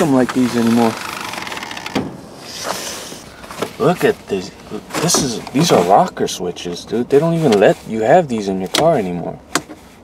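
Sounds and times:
car door creaking: 0.0s - 6.2s.

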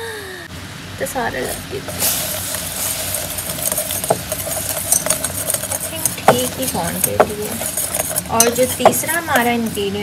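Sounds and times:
steady hum: 0.0s - 10.0s
whisk clicking in glass bowl: 1.9s - 10.0s.

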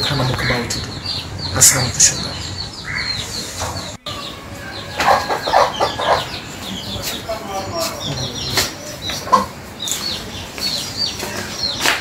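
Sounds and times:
lower bird calls: 0.0s - 11.9s
birds chirping: 0.0s - 12.0s.

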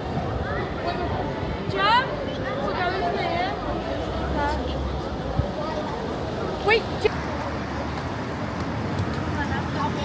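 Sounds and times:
people's voices: 0.0s - 10.0s
traffic on a wet street: 0.0s - 10.0s.

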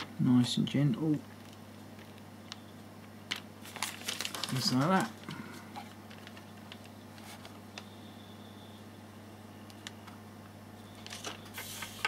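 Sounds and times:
steady low hum: 0.0s - 12.0s
faint clicks and rustles: 1.2s - 7.9s.

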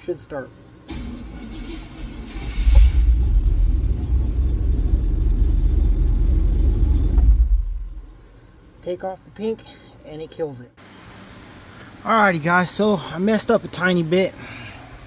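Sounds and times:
engine running low rumble: 0.8s - 8.8s
engine cranking and starting: 0.9s - 8.1s.

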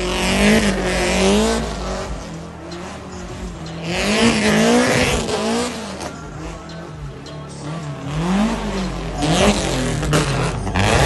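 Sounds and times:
car engine revving hard: 0.0s - 11.0s.

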